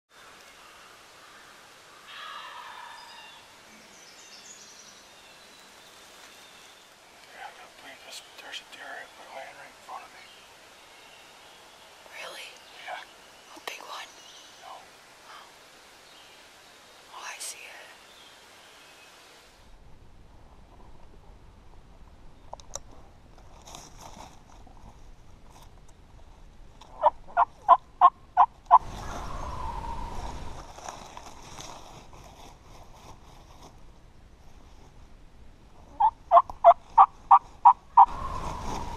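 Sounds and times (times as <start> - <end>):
person whispering: 7.2 - 10.4, 12.1 - 15.6, 17.1 - 18.0.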